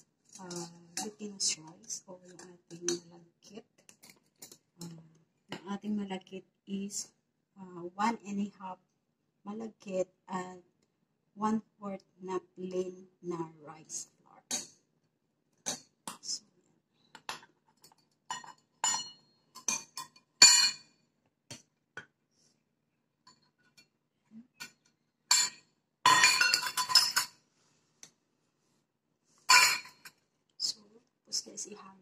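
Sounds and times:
metal cups clinking against bowl: 0:17.3 - 0:20.8, 0:24.6 - 0:27.3, 0:29.5 - 0:30.1.

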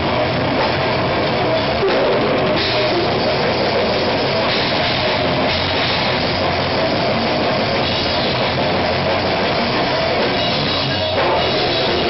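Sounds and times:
drums and cymbals struck fast: 0:00.0 - 0:12.0
live metal band playing: 0:00.0 - 0:12.0.

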